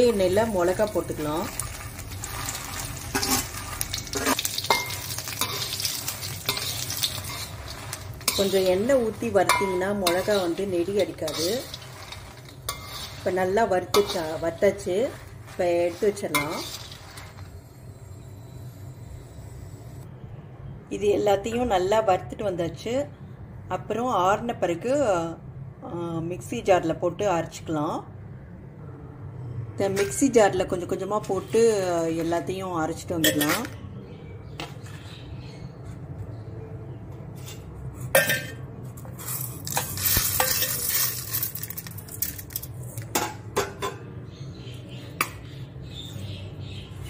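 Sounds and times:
chillies clattering into steel jar: 0.0 - 17.5, 38.2 - 44.0
chillies crackling against steel: 0.0 - 18.8, 29.8 - 33.8, 37.4 - 44.2
spoon scraping and clinking on pan: 2.0 - 17.5, 37.4 - 44.0.

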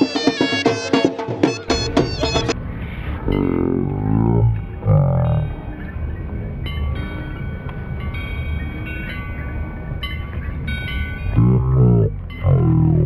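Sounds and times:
held high notes: 0.0 - 5.8.

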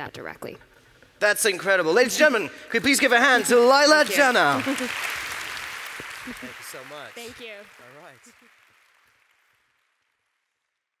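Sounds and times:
faint audience applause: 1.5 - 10.8.

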